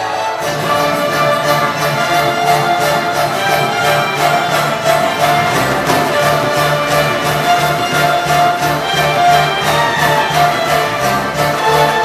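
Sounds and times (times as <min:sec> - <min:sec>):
fiddles playing a tune: 0:00.0 - 0:12.0
pulsing bass line: 0:02.6 - 0:11.5.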